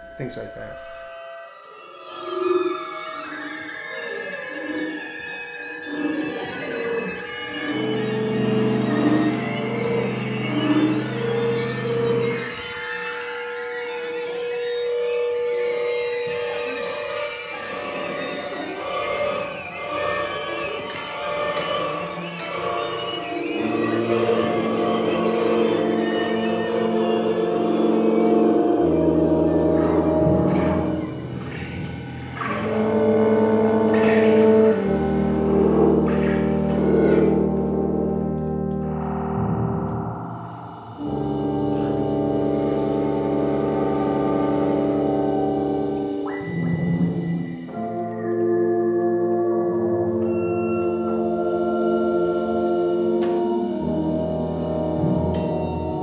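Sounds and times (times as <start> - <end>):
woodwinds and guitars playing: 3.2 - 56.0.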